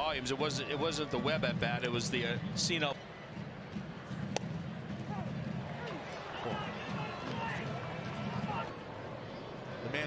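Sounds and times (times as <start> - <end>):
crowd murmur: 1.0 - 10.0
baseball smacking into mitt: 4.2 - 4.6.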